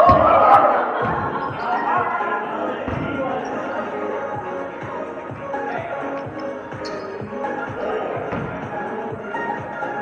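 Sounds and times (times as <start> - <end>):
volleyball thuds on gym floor: 0.0 - 1.4, 2.8 - 3.3, 8.2 - 8.7
voices in echoing hall: 0.0 - 10.0.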